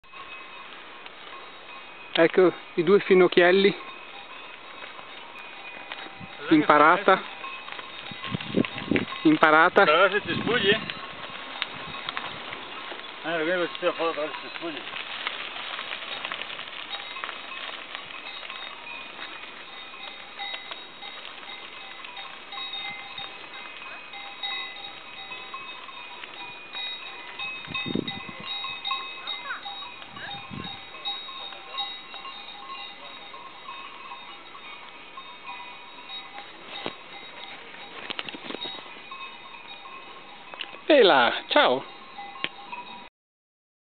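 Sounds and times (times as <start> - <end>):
cowbells ringing: 0.0 - 43.1.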